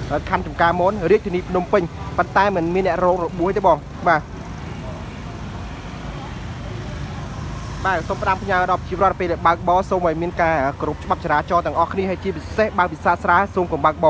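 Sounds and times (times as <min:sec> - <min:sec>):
people talking: 0:00.0 - 0:14.0
street traffic and engine hum: 0:00.0 - 0:14.0.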